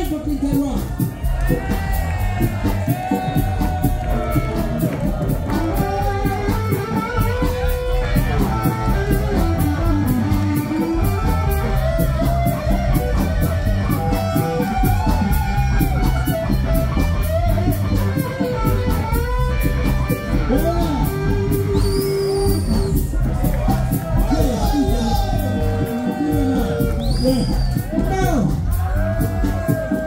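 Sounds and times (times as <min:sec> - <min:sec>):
drums with steady hi-hat: 0:00.0 - 0:30.0
heavy bass line: 0:00.0 - 0:30.0
electric guitar bending notes: 0:01.4 - 0:29.7.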